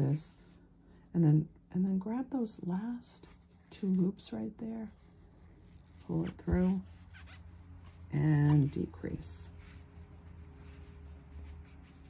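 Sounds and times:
low room hum: 0:00.0 - 0:12.0
crochet hook rubbing yarn: 0:04.8 - 0:12.0.

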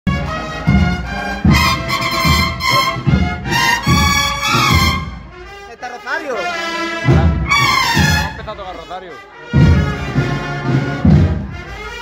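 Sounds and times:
marching drum beat: 0:00.1 - 0:05.7, 0:06.5 - 0:12.0
cornets playing sustained chords: 0:00.1 - 0:12.0.

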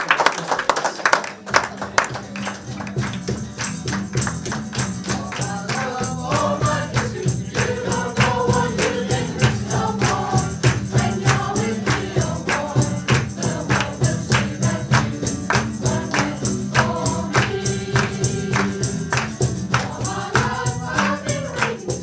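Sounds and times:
steady percussive beat: 0:02.1 - 0:22.0
choir singing upbeat song: 0:05.0 - 0:22.0.

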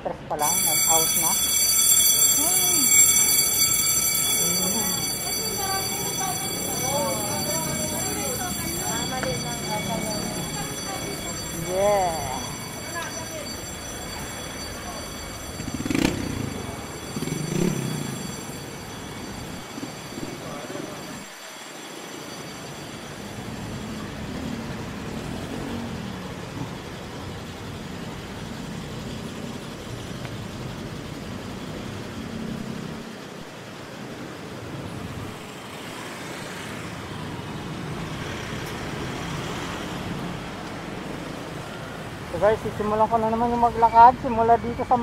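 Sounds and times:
cars passing: 0:00.0 - 0:45.0
engine and tyre noise: 0:00.0 - 0:45.0.

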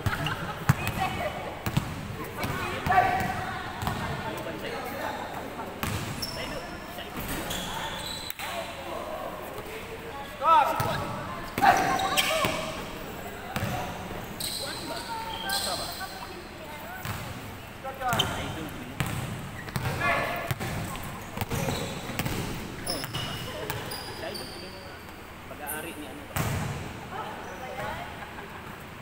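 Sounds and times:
sneakers squeaking: 0:00.0 - 0:08.8, 0:09.5 - 0:26.8
players calling out: 0:00.0 - 0:16.3
basketball bouncing: 0:03.2 - 0:04.1, 0:17.0 - 0:17.3, 0:19.0 - 0:23.9.

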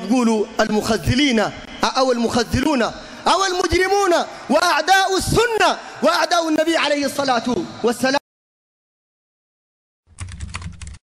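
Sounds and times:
keyboard typing clicks: 0:10.1 - 0:11.0.

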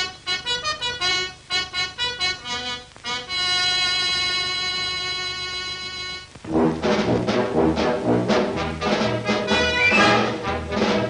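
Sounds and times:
horn fanfare phrase: 0:06.5 - 0:10.9.

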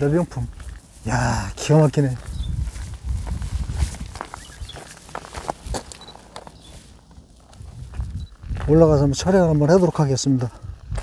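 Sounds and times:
footsteps crunching on gravel: 0:00.0 - 0:11.0.

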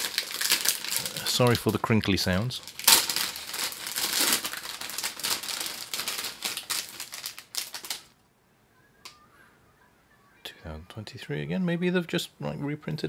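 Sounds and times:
plastic bag crinkling: 0:00.0 - 0:08.2.

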